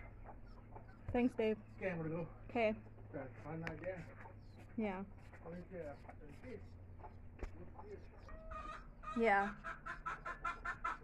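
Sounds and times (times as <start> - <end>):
chicken clucking: 5.5 - 11.0.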